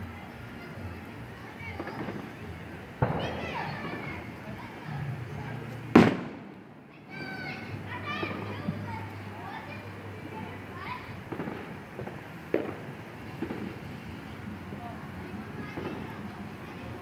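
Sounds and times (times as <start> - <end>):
firework bang with echo: 3.0 - 4.2, 5.9 - 6.6, 11.3 - 13.9.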